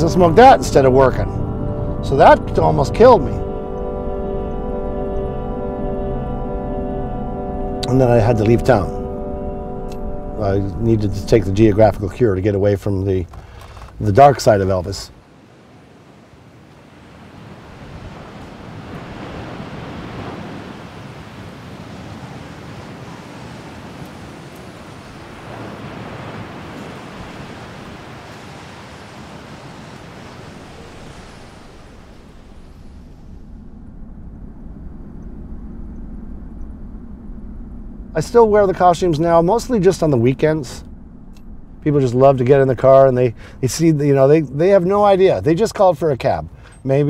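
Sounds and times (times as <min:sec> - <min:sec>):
low steady rumble: 0:00.0 - 0:15.2, 0:30.5 - 0:47.0
sea: 0:00.0 - 0:47.0
wind: 0:00.0 - 0:47.0.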